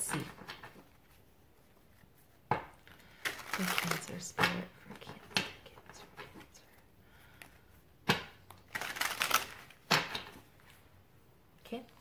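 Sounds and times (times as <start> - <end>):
cards being shuffled: 0.0 - 10.8.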